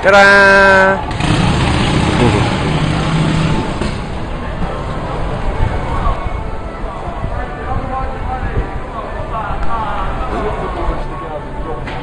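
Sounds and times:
street noise: 0.0s - 12.0s
vehicle engine hum: 0.8s - 5.7s.

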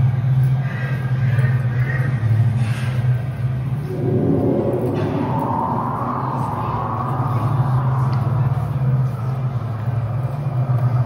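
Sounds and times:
low droning rumble: 3.5s - 11.0s
higher tone: 3.8s - 9.2s.

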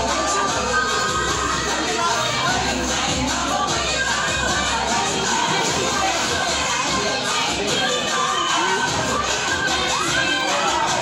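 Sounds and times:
babble of a crowd: 0.0s - 11.0s
children shouting and cheering: 0.0s - 11.0s.

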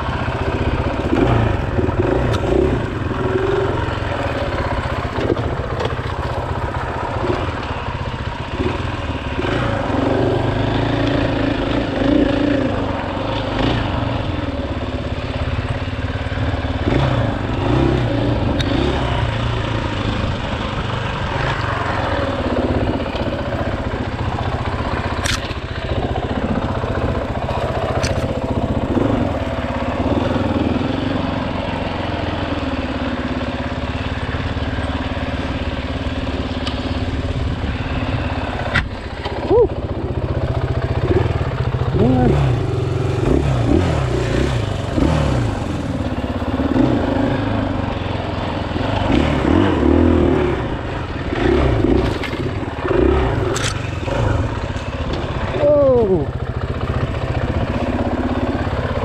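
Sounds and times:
dirt bike engine revving: 0.0s - 59.0s
sharp clicks: 25.2s - 25.6s.

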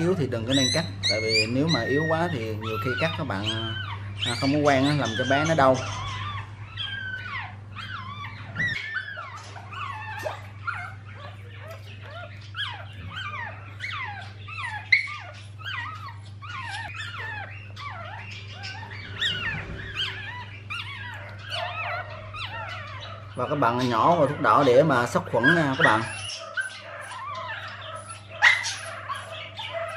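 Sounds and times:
puppy squealing: 0.0s - 29.9s.

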